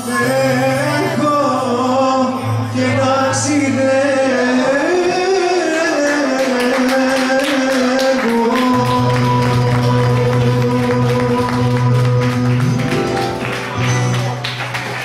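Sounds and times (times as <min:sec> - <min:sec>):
acoustic band playing a song: 0:00.0 - 0:15.0.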